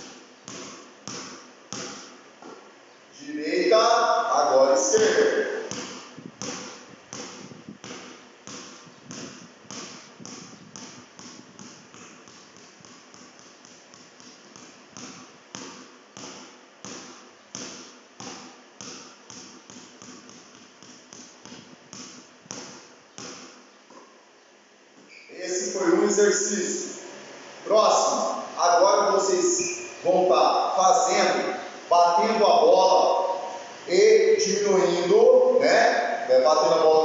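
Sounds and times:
basketball bouncing on concrete: 0.0 - 2.7, 4.9 - 24.1.

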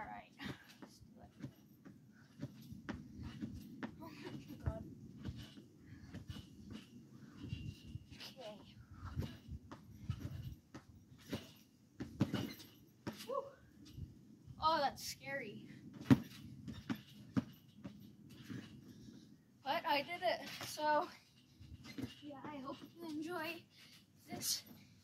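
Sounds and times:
trampoline springs creaking: 0.0 - 25.0
trampoline mat thumps: 2.3 - 13.5, 15.9 - 18.7, 24.2 - 24.8
short squeaks: 12.2 - 13.5, 21.3 - 24.6.

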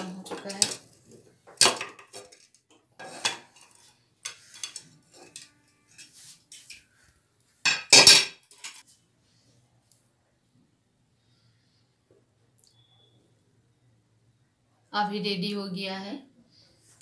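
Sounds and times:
metal lid clinking and clanking: 7.7 - 8.8.

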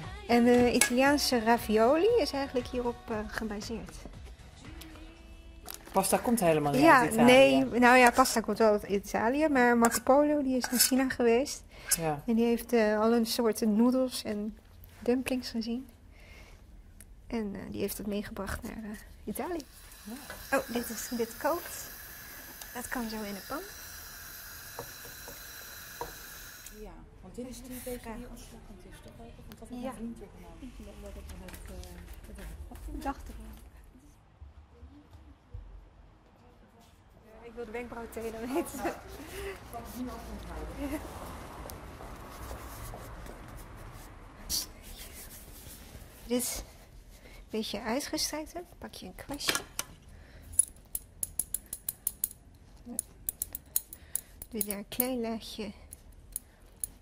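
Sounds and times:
boiling water hiss: 19.6 - 26.8.

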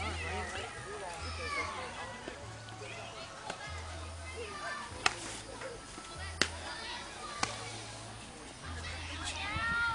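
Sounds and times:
chattering voices: 0.0 - 9.9.

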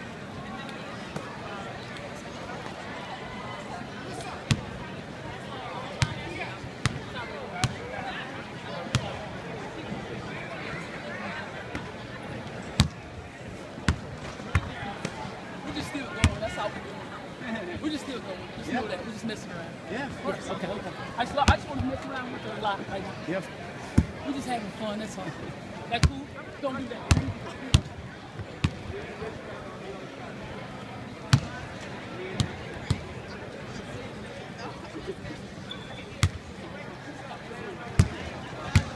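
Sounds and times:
people's voices: 0.0 - 38.9.

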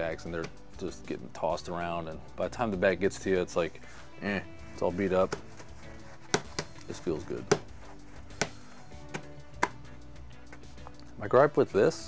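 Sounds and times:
faint background music: 0.0 - 12.0
bag knocking on cutting mat: 6.2 - 9.8.

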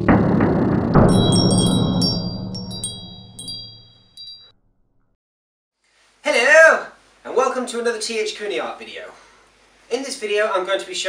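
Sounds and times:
low drone: 0.0 - 3.8
shimmering chime strikes: 1.0 - 4.5.

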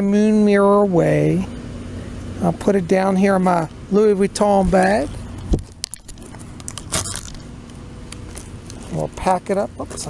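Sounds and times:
leather bag rustle: 5.5 - 7.6.

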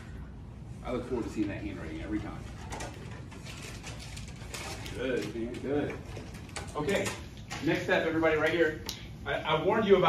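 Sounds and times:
clicks and rustles from desks: 2.2 - 8.9.

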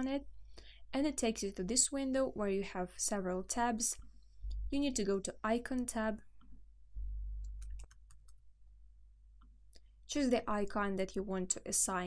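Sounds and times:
low hum: 4.4 - 5.0, 6.8 - 7.9
keyboard and mouse clicks: 7.4 - 8.4.

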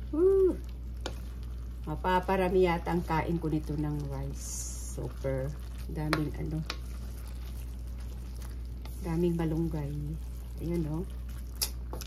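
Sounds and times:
person humming: 0.0 - 0.6
wooden spoon stirring in a wok: 0.5 - 12.0.

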